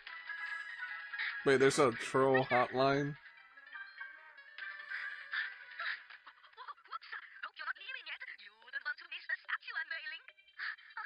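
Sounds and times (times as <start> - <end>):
cartoon dialogue: 5.0 - 11.0.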